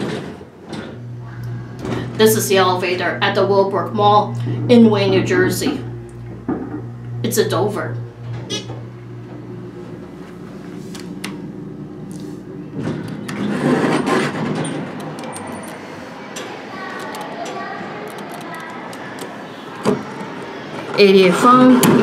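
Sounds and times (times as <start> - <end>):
elevator doors sliding open: 0.0 - 22.0
elevator low hum: 0.0 - 22.0.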